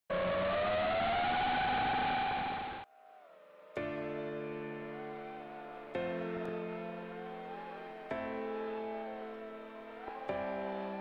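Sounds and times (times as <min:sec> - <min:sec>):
rushing whoosh with rising tone: 0:00.1 - 0:06.0.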